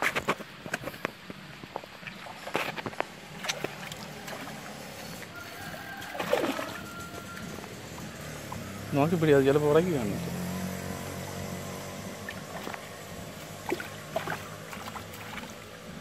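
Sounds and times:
fish splashing in water: 1.6 - 9.0, 10.4 - 16.0.

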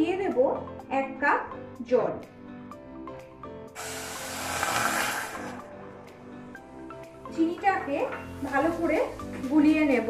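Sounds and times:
water pouring into metal pot: 3.8 - 5.7.

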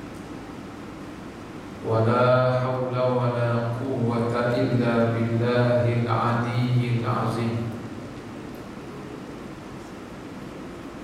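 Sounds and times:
man chanting: 1.8 - 7.7.

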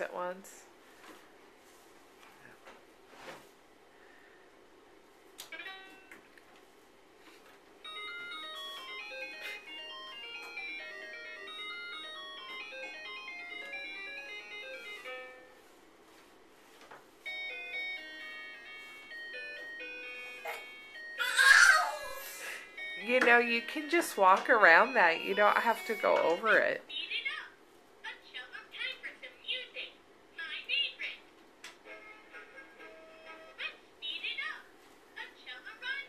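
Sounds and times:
electronic toy tune of beeping notes: 7.9 - 15.0, 22.8 - 26.5.

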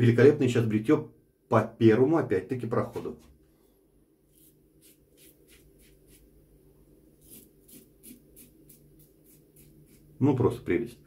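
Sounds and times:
razor scraping stubble: 4.3 - 6.3, 7.2 - 10.2.

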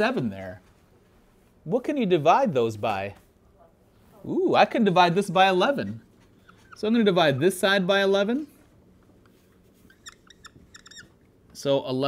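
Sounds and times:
marker squeaking on whiteboard: 5.1 - 11.6.

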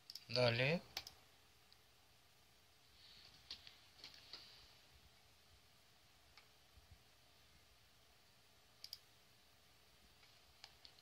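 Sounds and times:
computer mouse clicks: 0.0 - 0.3, 0.9 - 1.8, 8.8 - 9.1, 10.2 - 11.0.

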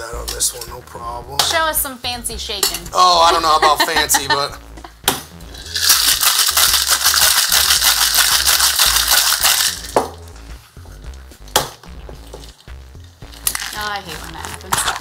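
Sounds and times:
low background music: 0.0 - 15.0
ice rattling in cocktail shaker: 5.6 - 10.0, 13.4 - 15.0.

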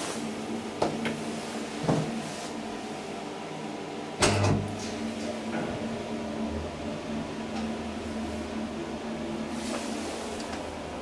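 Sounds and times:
elevator machinery hum: 0.0 - 11.0
elevator door shutting with clatter: 4.2 - 6.1.

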